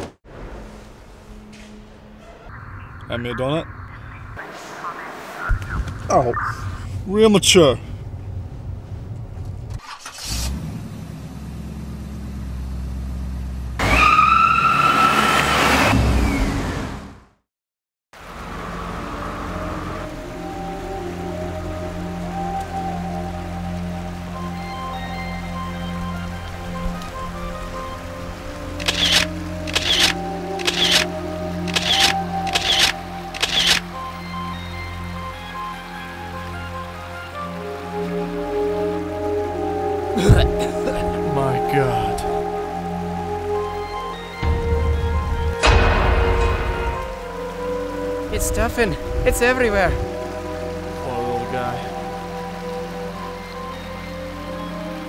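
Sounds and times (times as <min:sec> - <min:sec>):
slow background music: 0:00.6 - 0:03.3, 0:18.4 - 0:55.0
sharp hits: 0:45.5 - 0:47.7.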